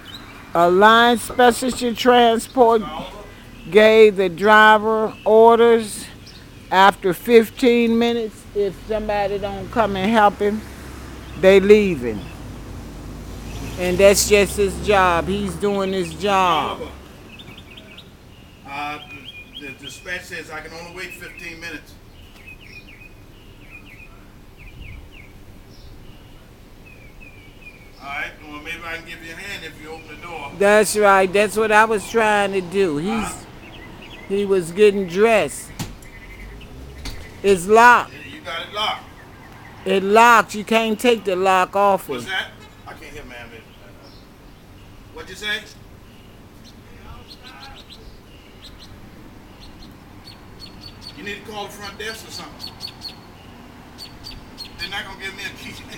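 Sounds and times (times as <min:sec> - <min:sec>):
birds chirping: 0:00.0 - 0:55.9
small bird chirping: 0:32.8 - 0:39.9, 0:42.1 - 0:55.9.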